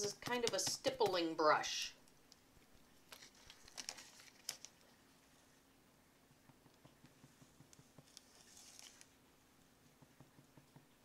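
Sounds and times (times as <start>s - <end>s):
toothbrush scrubbing wet paint: 6.7s - 9.1s.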